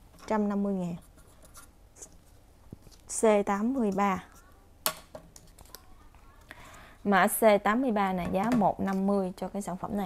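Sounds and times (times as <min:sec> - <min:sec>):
faint light scratching: 0:00.8 - 0:04.6.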